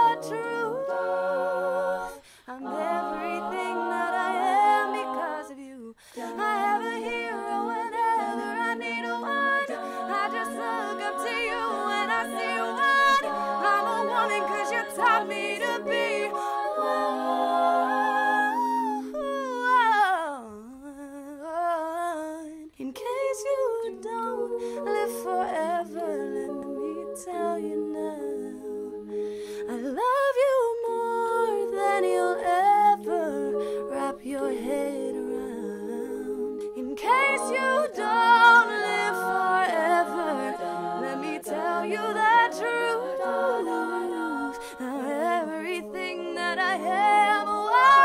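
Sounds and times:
female a cappella ensemble singing: 0.0s - 48.0s.

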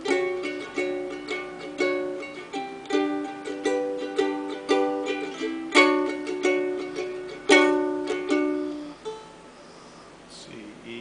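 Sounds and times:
ukulele chords strummed: 0.0s - 9.4s.

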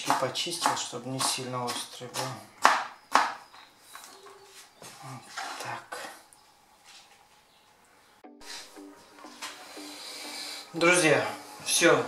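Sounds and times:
knife chopping on wooden board: 0.0s - 3.5s
background music: 8.2s - 12.0s.

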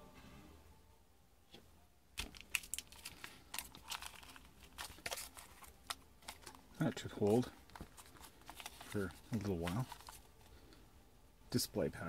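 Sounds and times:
cardboard and tissue paper rustling: 2.2s - 10.6s.

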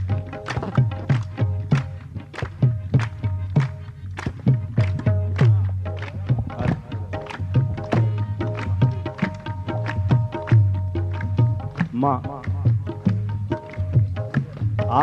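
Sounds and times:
rhythmic hand claps: 0.0s - 15.0s.

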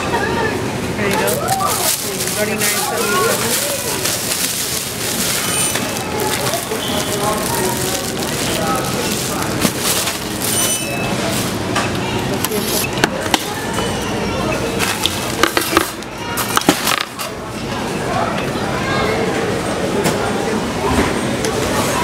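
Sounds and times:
background voices: 1.0s - 11.6s
plastic bags rustling: 1.0s - 11.7s.

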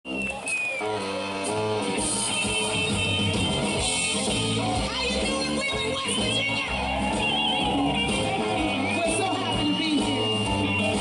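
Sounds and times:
live blues band: 0.1s - 11.0s.

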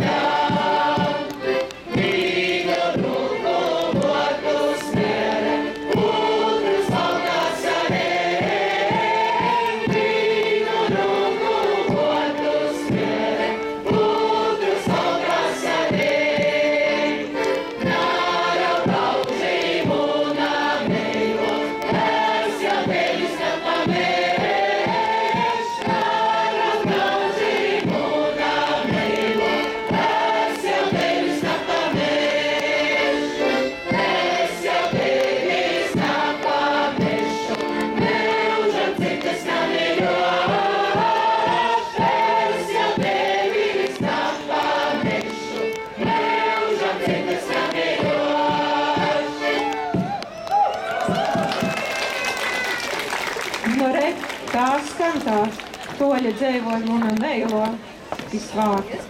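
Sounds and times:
audience singing along: 0.0s - 50.2s
group singing folk song in chorus: 0.0s - 50.2s
steady beat: 0.0s - 50.4s.

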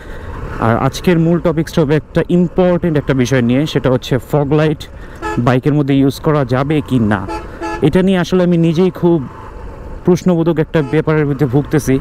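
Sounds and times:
road and wind rumble: 0.0s - 12.0s
man talking: 0.6s - 9.4s, 10.0s - 12.0s
vehicle horn toot: 5.2s - 5.5s, 7.2s - 7.9s, 10.8s - 11.1s.

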